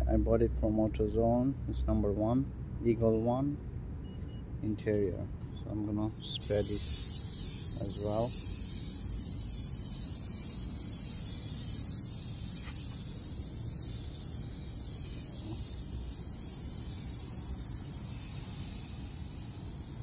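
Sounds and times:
aerosol can spraying: 0:06.4 - 0:20.0.

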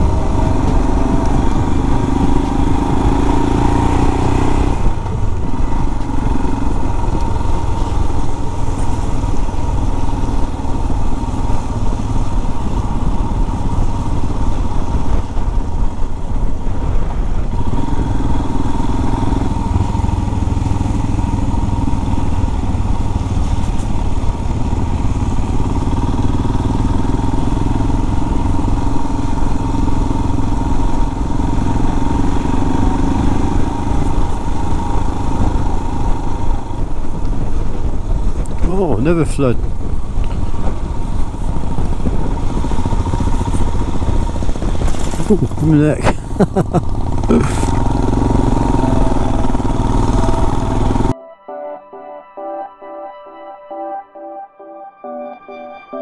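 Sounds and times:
motorcycle engine running: 0:00.0 - 0:38.8, 0:39.6 - 0:51.2.

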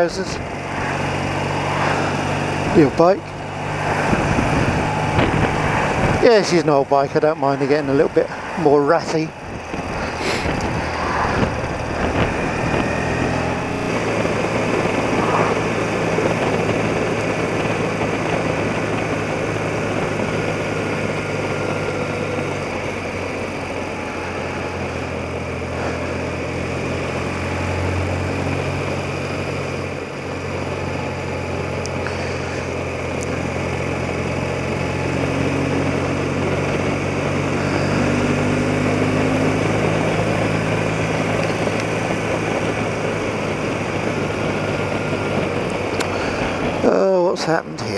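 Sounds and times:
motorcycle engine running: 0:00.0 - 0:47.9
wind and road rush: 0:00.0 - 0:47.9.

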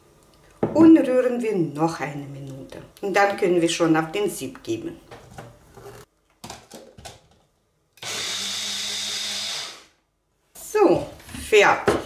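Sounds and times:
blender motor whirring: 0:08.0 - 0:10.0.

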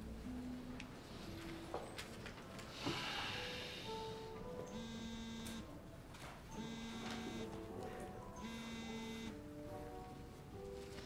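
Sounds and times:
soft background music: 0:00.0 - 0:11.0
phone buzzing on vibrate: 0:04.7 - 0:05.7, 0:06.6 - 0:07.5, 0:08.4 - 0:09.4.

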